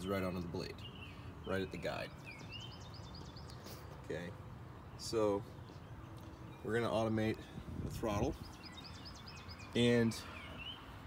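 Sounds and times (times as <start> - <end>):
bird singing: 0.0 - 11.0.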